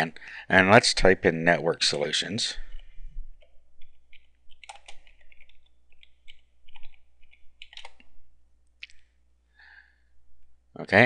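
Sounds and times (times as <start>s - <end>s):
keyboard keystroke clicks: 4.1s - 7.0s, 7.6s - 8.1s.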